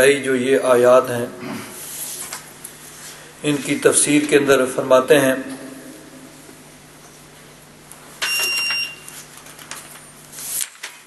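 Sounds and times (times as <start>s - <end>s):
short high beep: 8.2s - 9.1s.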